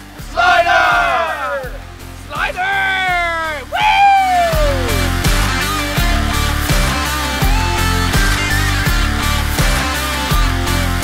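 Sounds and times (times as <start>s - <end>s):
rock music: 0.0s - 11.0s
men yelling long shouts: 0.2s - 4.9s.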